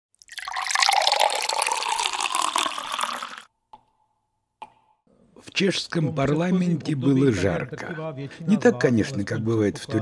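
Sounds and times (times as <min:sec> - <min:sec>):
water pouring: 0:00.1 - 0:03.5.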